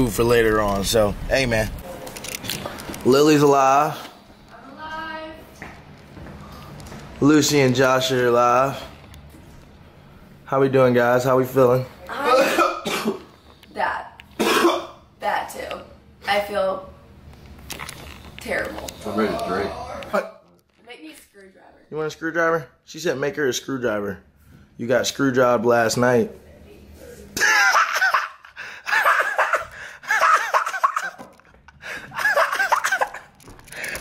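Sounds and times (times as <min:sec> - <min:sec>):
person coughing: 0:12.2 - 0:13.3, 0:14.4 - 0:15.0, 0:32.2 - 0:33.3
high-pitched laughter: 0:27.4 - 0:31.3, 0:32.1 - 0:33.3.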